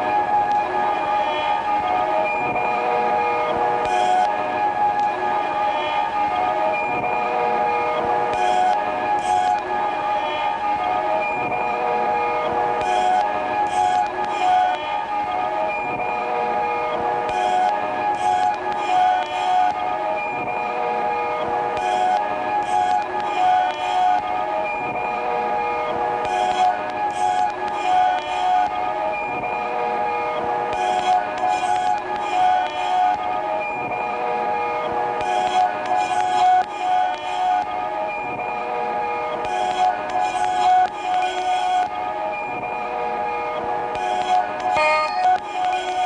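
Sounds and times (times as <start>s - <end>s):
drone of metallic tones: 42.8s - 46.0s.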